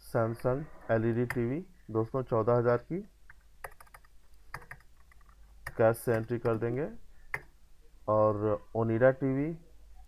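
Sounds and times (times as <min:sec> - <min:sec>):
faint keyboard keystrokes: 0:03.3 - 0:06.7.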